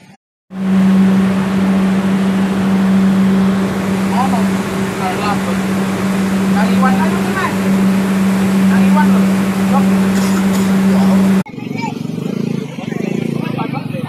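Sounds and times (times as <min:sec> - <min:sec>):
machinery humming: 0:00.0 - 0:11.4.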